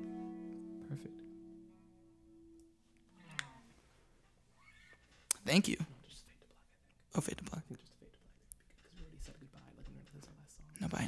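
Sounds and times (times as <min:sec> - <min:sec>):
electric guitar chord: 0:00.0 - 0:02.8.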